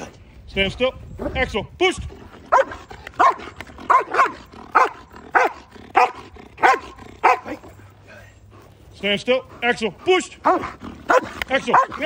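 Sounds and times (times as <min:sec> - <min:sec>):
dog barking: 0:02.5 - 0:07.6, 0:10.4 - 0:12.0.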